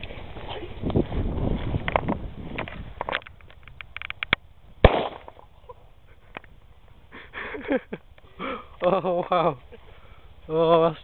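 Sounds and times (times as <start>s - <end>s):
sharp bang: 4.8s - 5.4s.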